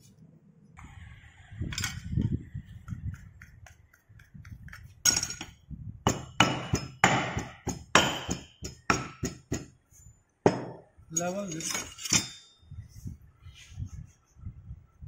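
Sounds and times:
metallic clink: 0:11.1 - 0:12.6.

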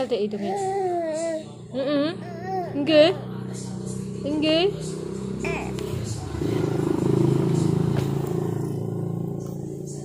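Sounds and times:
motorcycle engine passing: 0:01.5 - 0:10.0.

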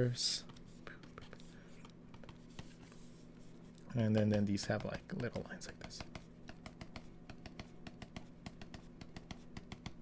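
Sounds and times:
stylus tapping on tablet: 0:04.1 - 0:10.0.

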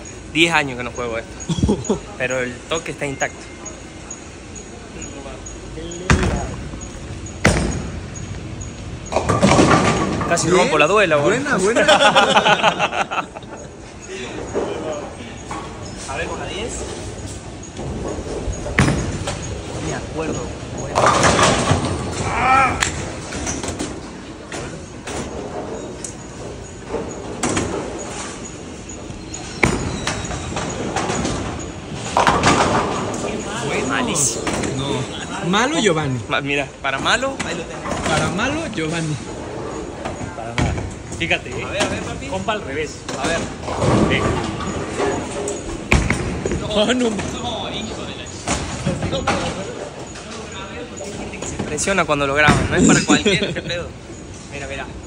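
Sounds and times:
bowling alley background noise: 0:00.0 - 0:55.0
voices: 0:00.0 - 0:55.0
bowling ball knock: 0:07.4 - 0:08.1.

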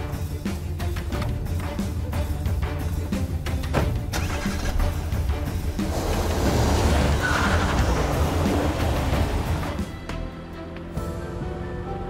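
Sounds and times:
dramatic background music: 0:00.0 - 0:12.0
car driving away: 0:04.1 - 0:12.0.

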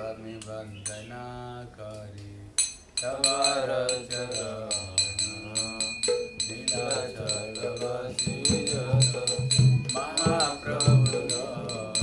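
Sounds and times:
hand cymbals clinking: 0:00.4 - 0:01.1, 0:02.6 - 0:12.0
group chanting: 0:03.0 - 0:12.0.

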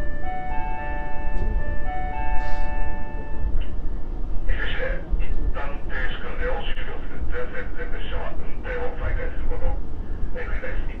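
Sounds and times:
electronic chime chords: 0:00.0 - 0:03.6
low rumble of stationary train: 0:00.0 - 0:11.0.

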